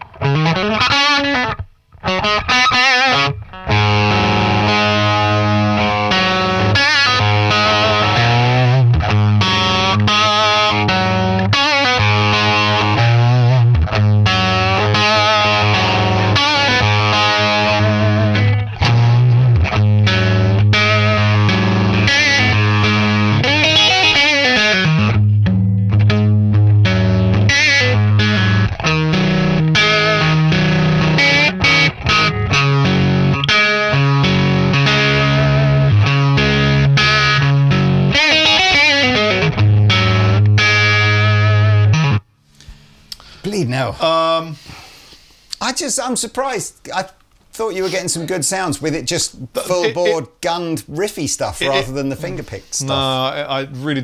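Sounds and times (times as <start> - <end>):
distorted electric guitar riffing: 0.0 - 43.4.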